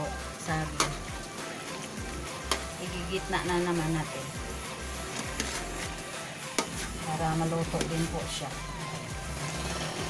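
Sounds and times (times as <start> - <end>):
background music: 0.0 - 10.0
metal spoon scraping a pot: 4.9 - 10.0.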